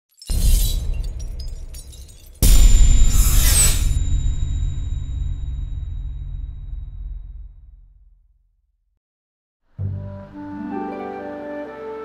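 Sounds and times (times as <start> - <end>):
crash with deep boom: 0.3 - 8.2.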